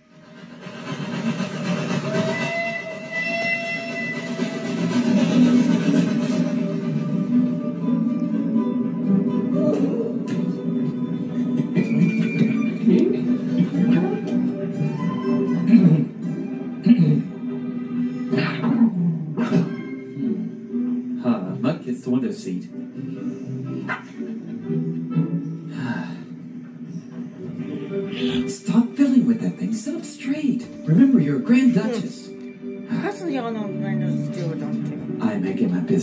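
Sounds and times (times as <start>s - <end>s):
train whistle tone: 0.0s - 6.8s
cartoon train rumbling: 0.0s - 8.1s
soft film score: 0.0s - 36.0s.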